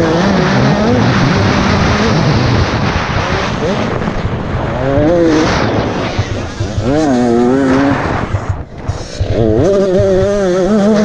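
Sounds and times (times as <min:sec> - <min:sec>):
dirt bike engine revving: 0:00.0 - 0:11.0.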